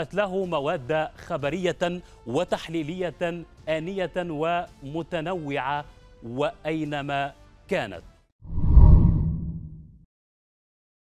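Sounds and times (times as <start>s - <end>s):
deep whoosh: 8.5s - 10.0s.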